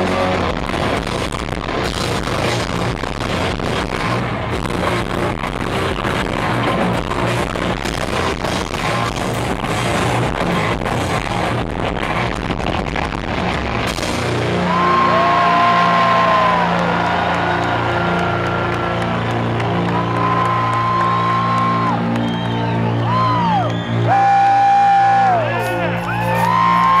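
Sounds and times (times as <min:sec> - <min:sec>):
live rock band: 0:00.0 - 0:27.0
audience cheering and whooping: 0:14.5 - 0:27.0.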